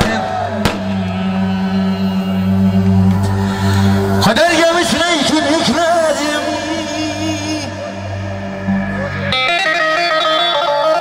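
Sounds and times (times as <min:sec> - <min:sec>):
long held note over low drone: 0:00.4 - 0:09.9.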